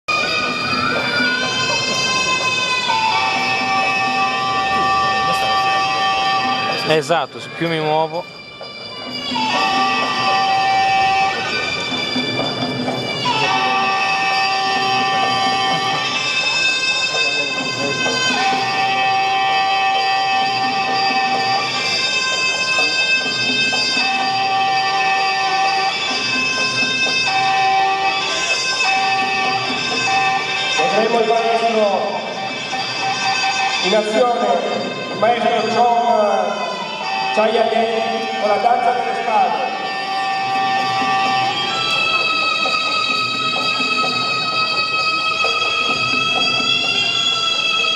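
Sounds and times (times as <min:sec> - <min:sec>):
reedy wind instrument long notes: 0:00.1 - 0:47.9.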